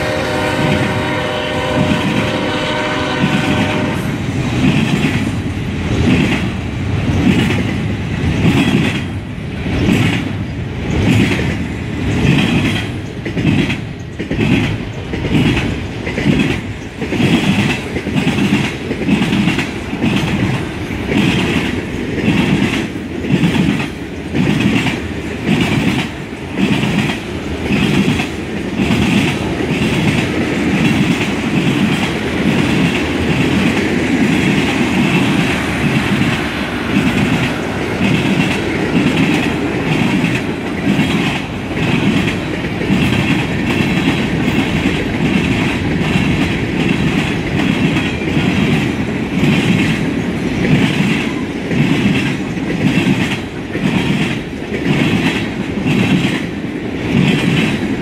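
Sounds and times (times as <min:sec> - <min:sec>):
freight train rolling past: 0:00.0 - 0:58.0
train wheels clickety-clack: 0:00.0 - 0:58.0.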